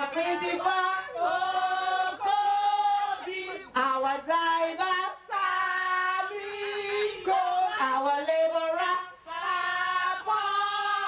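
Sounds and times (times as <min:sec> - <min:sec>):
women singing: 0:00.0 - 0:11.0.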